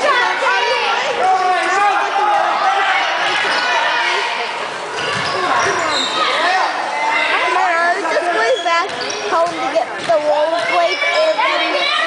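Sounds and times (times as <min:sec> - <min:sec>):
spectators chatting: 0:00.0 - 0:12.0.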